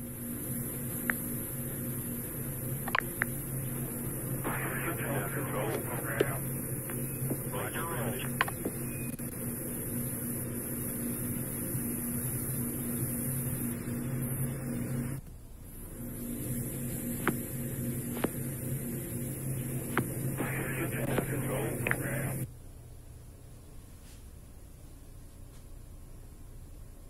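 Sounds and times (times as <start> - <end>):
low electrical hum: 0.0 - 27.0.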